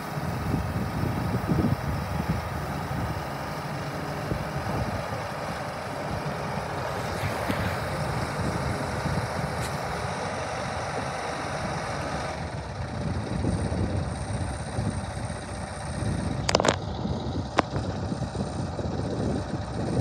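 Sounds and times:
engine idling: 0.0 - 20.0.

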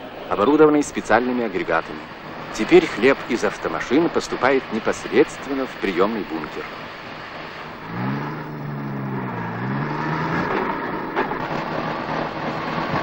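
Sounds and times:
truck engine running: 7.4 - 13.0.

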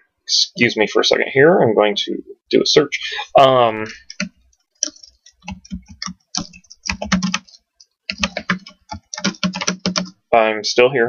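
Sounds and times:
typing on computer keyboard: 4.0 - 10.1.

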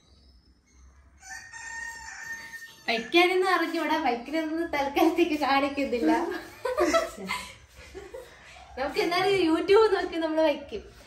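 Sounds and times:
faint rooster crowing: 0.9 - 3.8.

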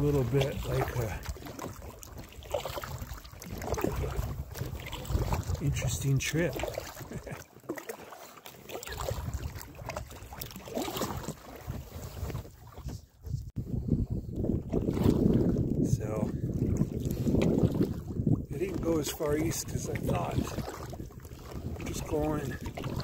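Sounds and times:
wind on microphone: 0.0 - 7.4, 8.8 - 23.0
water splashing around paddled raft: 0.0 - 13.5, 14.4 - 23.0.

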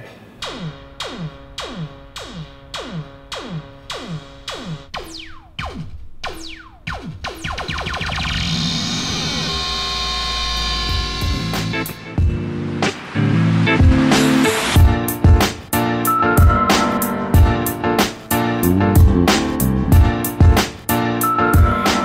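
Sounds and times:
buzzing synth drone: 0.4 - 5.5, 7.5 - 12.7
synth percussion hits: 0.4 - 8.6, 10.9 - 22.0.

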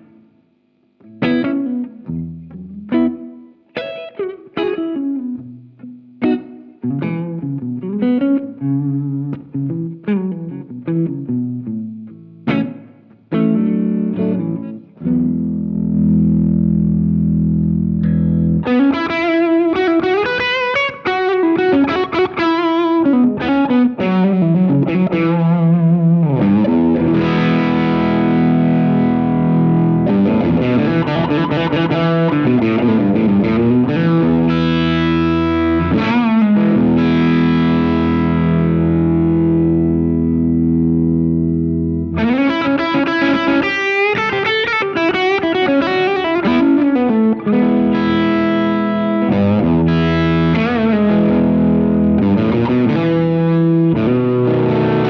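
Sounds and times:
overdriven electric guitar: 0.0 - 55.0.

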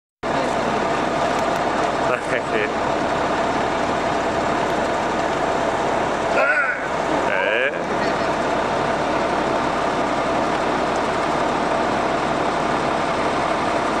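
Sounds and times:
coach engine idling: 0.2 - 14.0
voices: 2.0 - 2.8, 6.2 - 9.4.

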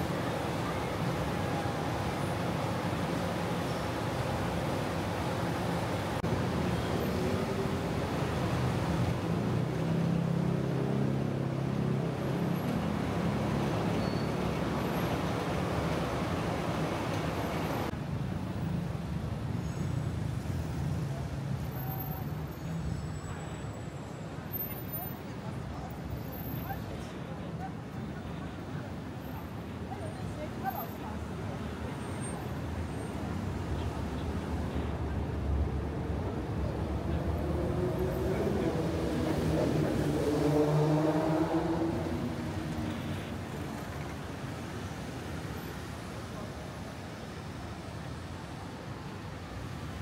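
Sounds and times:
car engines rumbling: 0.0 - 50.0
road traffic passing: 0.0 - 50.0.

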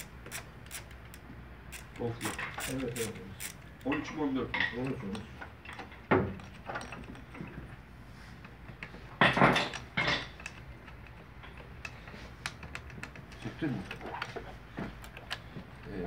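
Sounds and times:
metal tools clinking and knocking: 1.8 - 7.8, 9.2 - 12.0.

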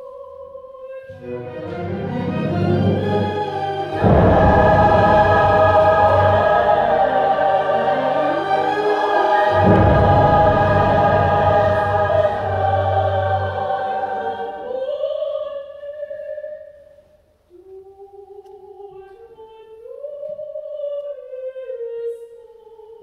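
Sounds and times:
choir singing held chords: 0.0 - 16.2
deep accompanying notes: 1.1 - 14.8.

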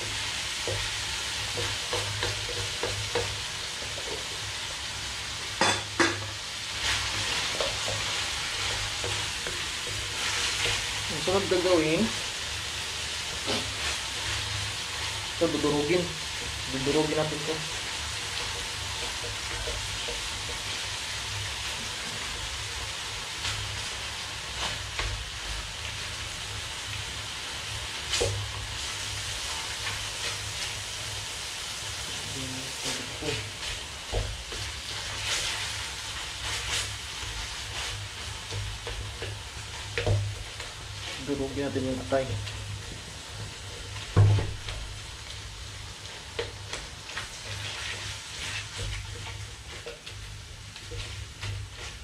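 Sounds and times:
meat sizzling in a wok: 0.0 - 52.0
wooden spatula scraping a wok: 0.0 - 52.0.

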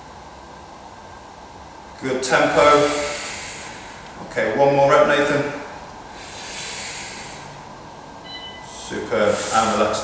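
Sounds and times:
person breathing out forcefully: 2.7 - 4.2, 6.1 - 7.7.

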